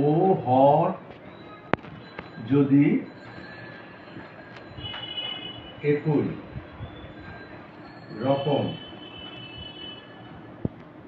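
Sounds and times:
man speaking: 0:02.4 - 0:03.1, 0:05.8 - 0:06.4, 0:08.2 - 0:08.8.

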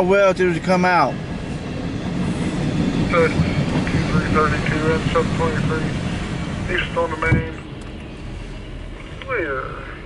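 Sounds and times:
freight train rolling past: 0:00.0 - 0:10.0.

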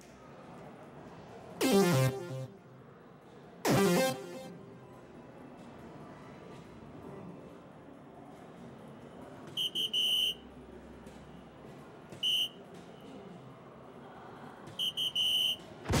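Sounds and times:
electronic dartboard beeps: 0:01.6 - 0:02.5.

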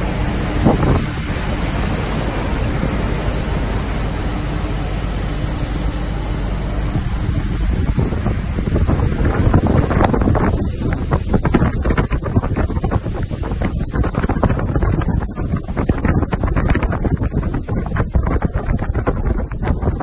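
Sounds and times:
low rumble: 0:00.0 - 0:20.0
sea rushing: 0:00.0 - 0:20.0
wind buffeting microphone: 0:00.0 - 0:20.0.

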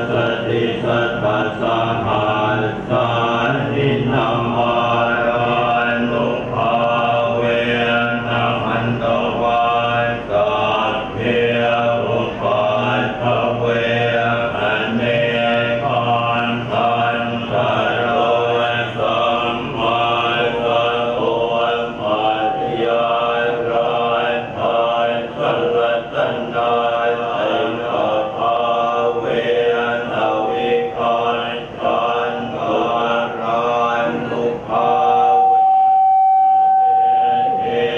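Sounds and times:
monks chanting in unison: 0:00.0 - 0:35.5, 0:37.0 - 0:37.9.

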